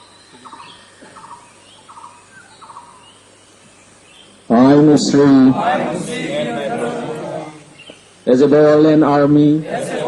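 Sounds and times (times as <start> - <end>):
high bird chirps: 0.0 - 4.4.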